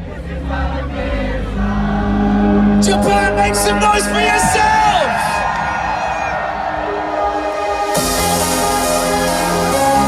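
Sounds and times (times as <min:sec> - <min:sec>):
trance music with synth chords: 0:00.2 - 0:10.0.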